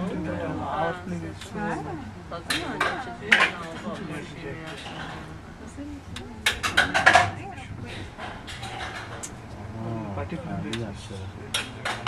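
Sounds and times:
people talking: 0:00.0 - 0:08.2, 0:09.6 - 0:12.0.

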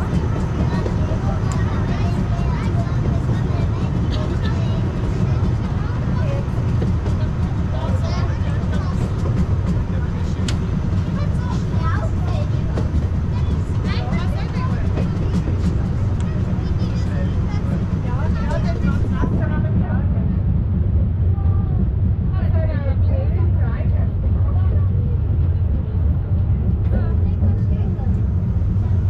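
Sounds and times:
passengers talking: 0:00.0 - 0:29.0
railway carriage rumbling: 0:00.0 - 0:29.0.

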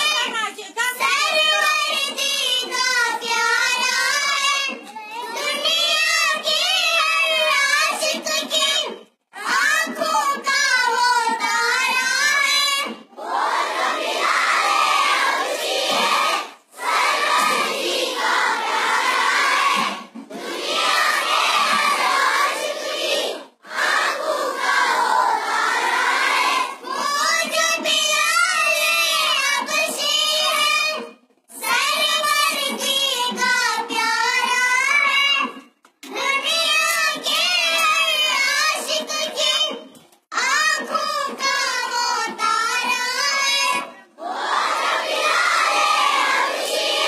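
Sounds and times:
girls singing into a microphone: 0:00.8 - 0:47.0.

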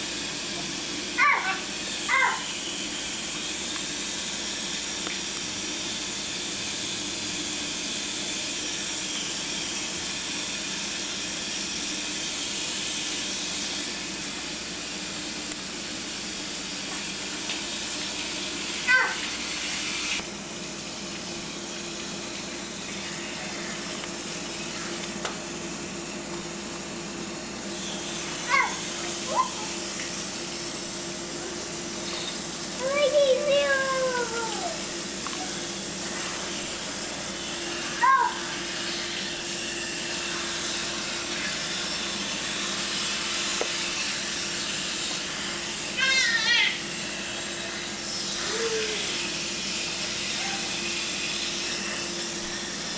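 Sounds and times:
hose spraying water on concrete: 0:00.0 - 0:52.9
baby squealing and babbling: 0:01.2 - 0:02.4.

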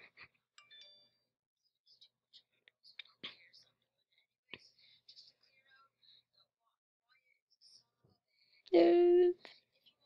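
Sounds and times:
boy whispering: 0:01.9 - 0:03.8.

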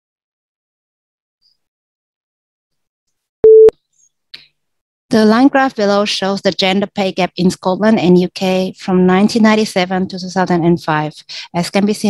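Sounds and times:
short electronic beep: 0:03.4 - 0:03.7.

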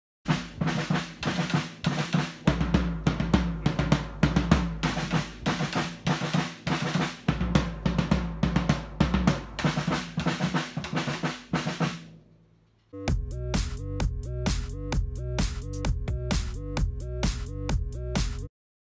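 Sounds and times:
drum kits playing: 0:00.3 - 0:12.1, 0:13.0 - 0:18.5.

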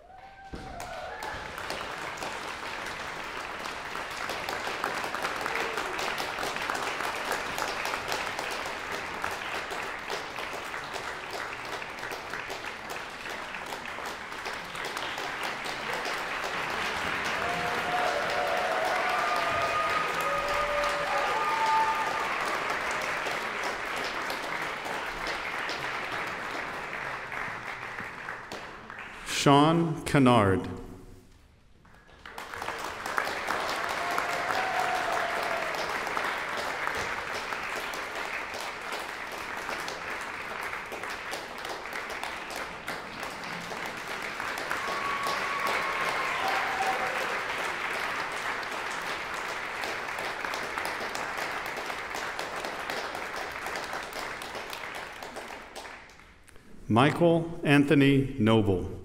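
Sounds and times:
audience applauding: 0:00.0 - 0:29.6, 0:31.8 - 0:56.4.

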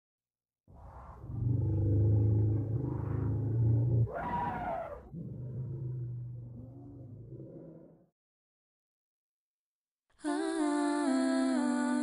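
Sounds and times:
low animal-like growl: 0:00.8 - 0:08.2.

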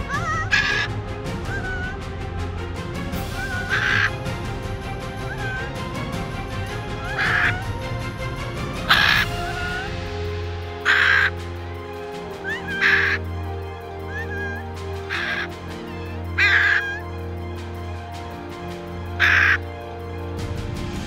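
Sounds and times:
macaw screeching calls: 0:00.0 - 0:00.9, 0:03.4 - 0:04.2, 0:05.2 - 0:05.8, 0:06.7 - 0:07.7, 0:08.8 - 0:10.0, 0:10.8 - 0:11.4, 0:12.2 - 0:17.2, 0:19.1 - 0:19.7
background music: 0:00.0 - 0:21.0.

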